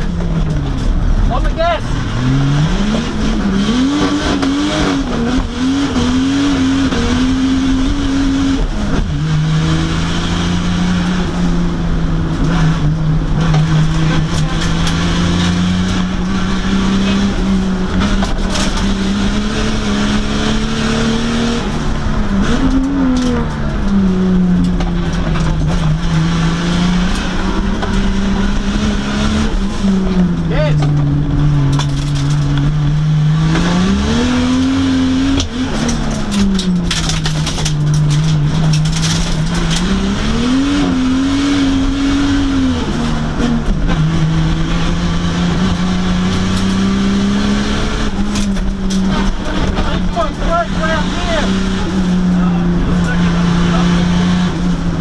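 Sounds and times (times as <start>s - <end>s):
car engine accelerating hard: 0.0s - 55.0s.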